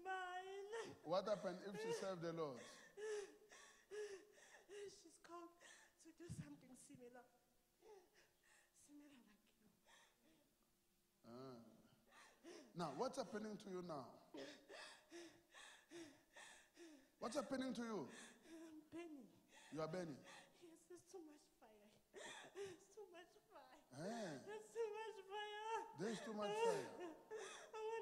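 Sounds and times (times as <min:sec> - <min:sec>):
woman sobbing: 0:00.0 - 0:07.2, 0:07.8 - 0:10.4, 0:12.0 - 0:13.6, 0:14.3 - 0:28.0.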